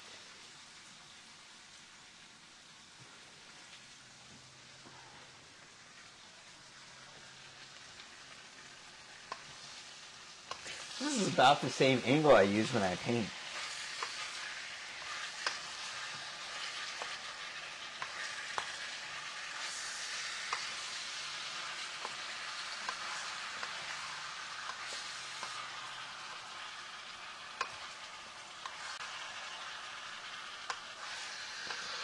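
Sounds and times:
food sizzling in a pan: 0.0 - 32.0
utensil clicking against pan: 9.2 - 9.6, 13.4 - 19.0, 19.6 - 26.5, 27.4 - 27.9.

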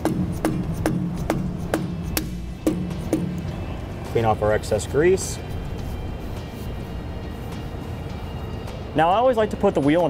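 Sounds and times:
mallet tapping metal cap: 0.0 - 3.5
background music: 0.0 - 10.0.

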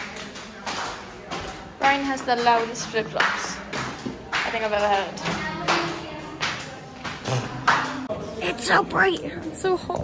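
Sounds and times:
flip-flops slapping on tiled floor: 0.0 - 8.1.

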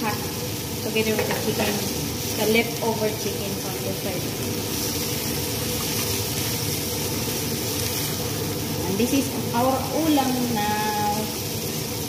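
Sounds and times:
food sizzling in a frying pan: 0.0 - 12.0.

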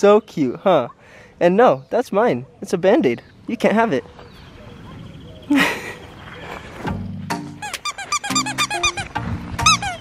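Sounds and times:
background music: 6.9 - 10.0
squeaky dog toy squeaks: 7.6 - 10.0.

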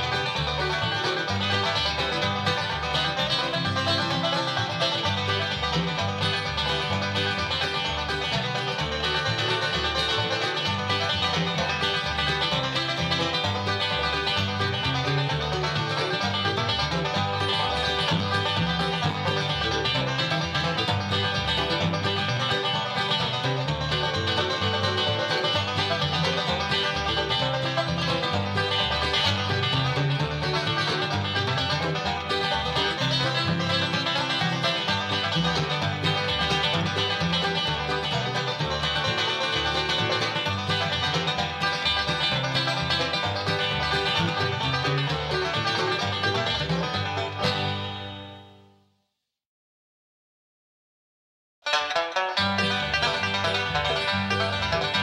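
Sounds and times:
bluegrass band playing: 0.0 - 48.5, 51.7 - 55.0
banjo lead: 0.0 - 48.8, 51.6 - 55.0.

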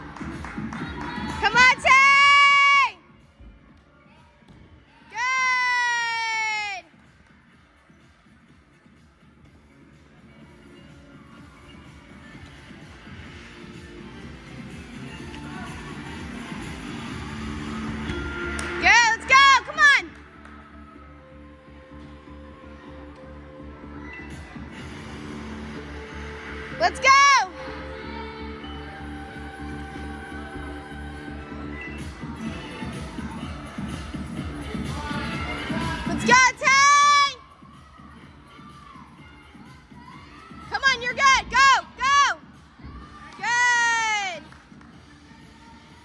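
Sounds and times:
gymnastics routine music: 0.0 - 46.0
girl shouting cheer: 5.1 - 6.8, 40.1 - 44.4.

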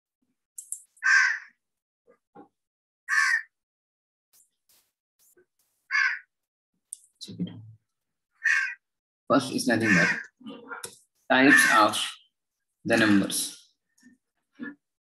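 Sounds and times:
crow cawing: 1.0 - 1.6, 3.1 - 3.6, 5.9 - 6.3, 8.4 - 8.9, 9.8 - 10.4, 11.4 - 11.9.

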